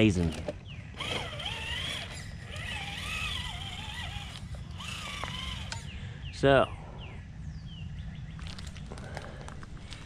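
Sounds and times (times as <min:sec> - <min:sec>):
electric motor and gears whining: 0:00.0 - 0:06.0.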